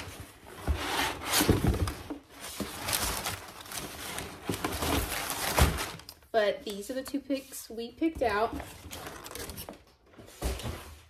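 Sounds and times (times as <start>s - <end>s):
packing paper rustling: 0.0s - 6.9s, 8.6s - 10.9s.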